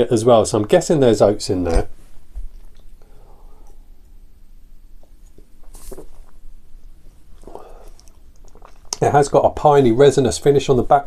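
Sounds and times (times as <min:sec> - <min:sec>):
short breath: 0:03.0 - 0:04.0
man sipping from a glass: 0:07.4 - 0:09.0.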